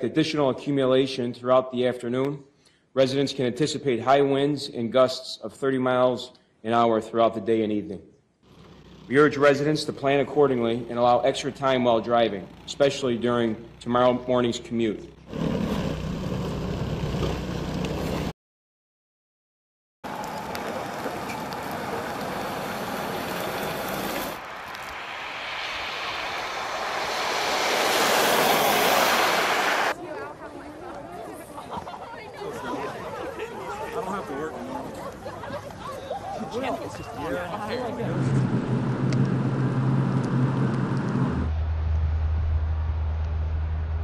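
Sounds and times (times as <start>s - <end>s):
snowblower running: 8.5s - 9.2s, 15.3s - 18.3s, 26.7s - 29.9s
car wheels spinning in snow: 15.2s - 18.3s, 20.1s - 30.0s, 38.0s - 41.5s
car engine revving: 21.8s - 30.0s, 38.0s - 41.6s
people's voices outdoors: 29.9s - 38.5s.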